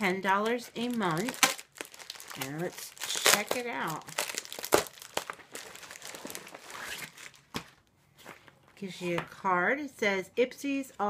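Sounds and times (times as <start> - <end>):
plastic pouch crinkling and tearing: 0.4 - 7.5.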